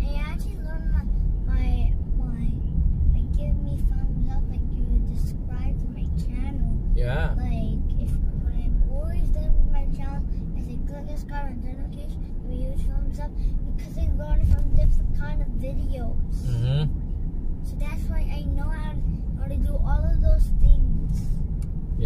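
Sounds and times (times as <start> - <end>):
car driving low rumble: 0.0 - 22.0
voices talking: 7.0 - 7.3, 16.4 - 16.9.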